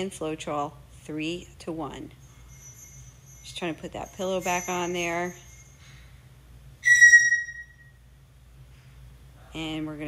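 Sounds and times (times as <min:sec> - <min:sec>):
parrot whistled call: 0:06.8 - 0:08.0.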